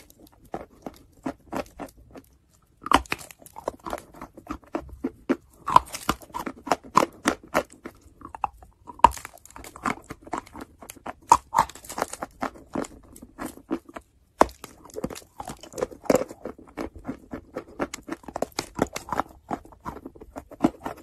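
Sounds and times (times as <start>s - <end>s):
chalk crunching while chewed: 0.0s - 21.0s.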